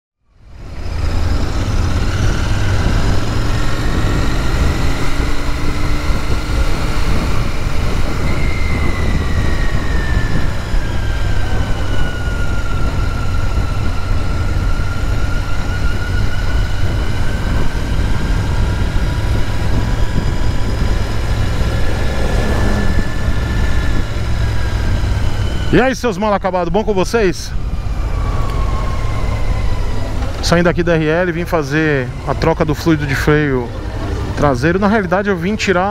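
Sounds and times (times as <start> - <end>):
motorcycle engine running: 0.3 - 25.7
wind rumble on microphone: 0.4 - 35.9.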